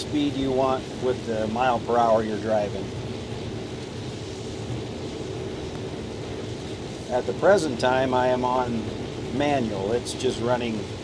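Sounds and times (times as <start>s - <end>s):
combine harvester drone: 0.0s - 11.0s
faint steady hum: 0.0s - 11.0s.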